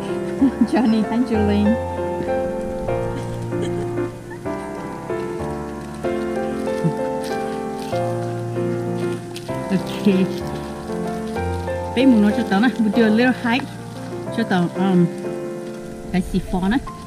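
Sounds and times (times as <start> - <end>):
slow piano music: 0.0 - 17.0.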